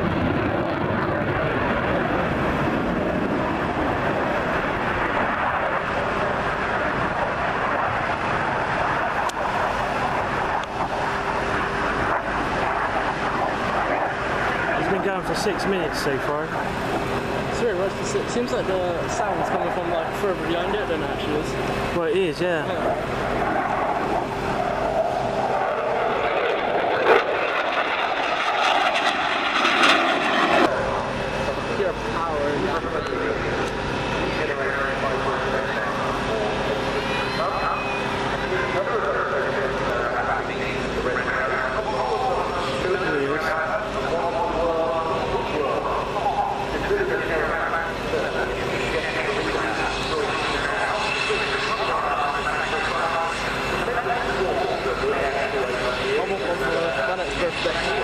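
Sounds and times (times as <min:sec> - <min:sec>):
fighter jet engine: 0:00.0 - 0:58.0
steady jet engine hum: 0:00.0 - 0:58.0
crowd voices: 0:30.7 - 0:58.0.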